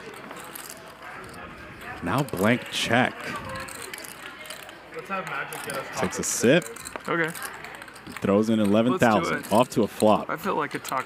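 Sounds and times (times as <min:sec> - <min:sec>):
low table chatter: 0:00.0 - 0:11.0
plastic objects clicking and crackling: 0:00.0 - 0:11.0.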